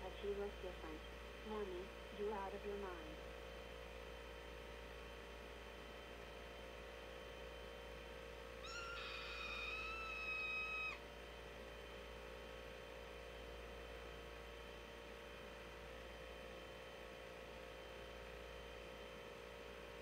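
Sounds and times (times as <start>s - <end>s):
faint steady hum: 0.0s - 20.0s
high-pitched cartoon scream: 8.6s - 11.0s.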